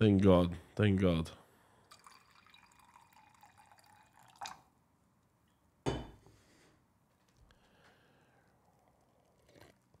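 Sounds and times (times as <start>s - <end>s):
liquid trickling into a mug: 1.8s - 4.7s
teapot knocking down on surface: 5.9s - 6.2s.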